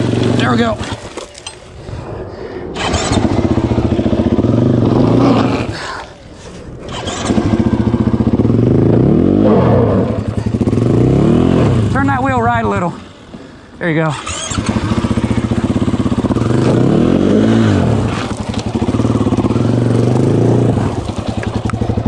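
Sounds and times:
motorcycle engine revving: 0.0s - 1.2s, 2.7s - 5.9s, 6.8s - 13.3s, 14.1s - 22.0s.

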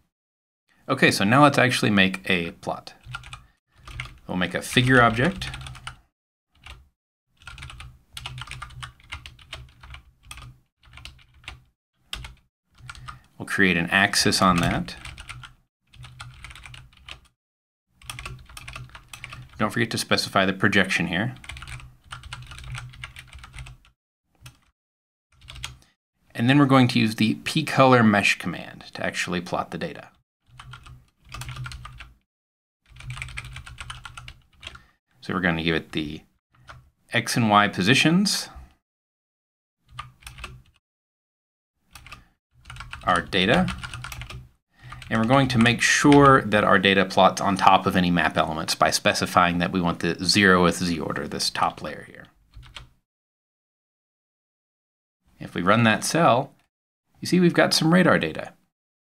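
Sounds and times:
typing on computer keyboard: 3.0s - 4.2s, 4.9s - 6.8s, 7.4s - 13.2s, 14.5s - 17.3s, 18.0s - 19.6s, 21.4s - 24.7s, 25.4s - 25.8s, 30.5s - 32.1s, 32.9s - 34.8s, 39.9s - 40.8s, 41.9s - 45.1s, 52.6s - 52.9s.

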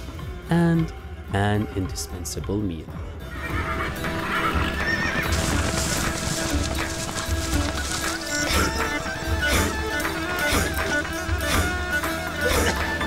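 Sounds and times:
music bed: 0.0s - 13.0s
horse neighing: 3.3s - 6.8s
horse hooves clip-clopping: 3.4s - 12.1s.

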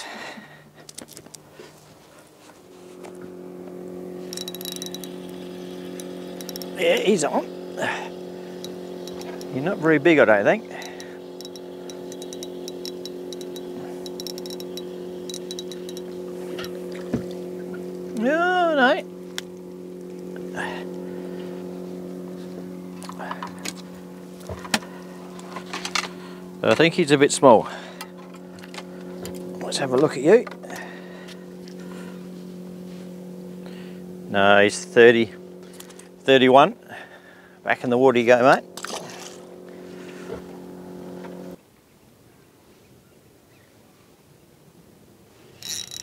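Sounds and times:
motor hum: 0.0s - 41.6s, 45.4s - 46.0s
fishing reel clicking: 4.2s - 16.8s, 45.6s - 46.0s.

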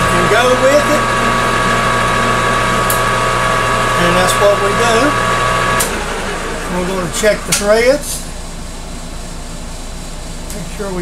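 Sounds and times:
metal lathe humming and whining: 0.0s - 8.1s.

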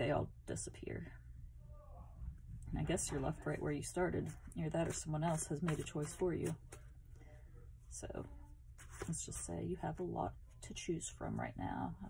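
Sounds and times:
soft rustling: 2.5s - 10.6s.

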